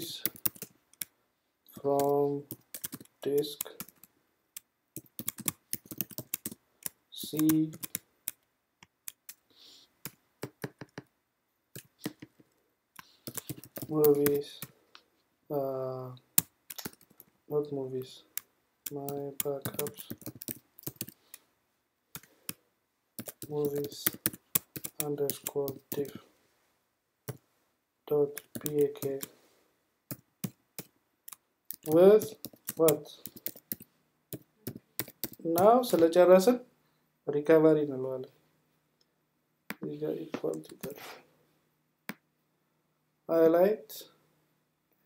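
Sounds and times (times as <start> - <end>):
keyboard typing: 0.0 - 1.1, 1.7 - 9.4, 10.0 - 11.1, 11.7 - 14.8, 16.4 - 17.3, 18.4 - 21.4, 22.1 - 22.6, 23.2 - 26.2, 28.1 - 29.3, 30.1 - 36.0, 40.4 - 41.0.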